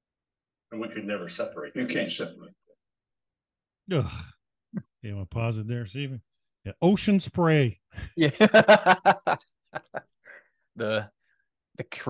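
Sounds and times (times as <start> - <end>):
man grunting: 3.9 - 4.3.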